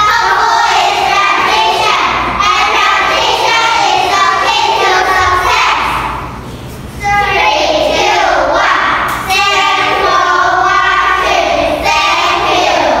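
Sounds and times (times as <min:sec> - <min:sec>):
young children singing in unison: 0:00.0 - 0:06.4, 0:07.0 - 0:13.0.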